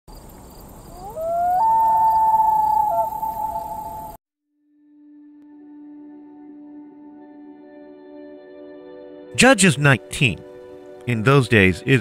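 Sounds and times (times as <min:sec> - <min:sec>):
howl-like animal call: 0:00.9 - 0:04.2.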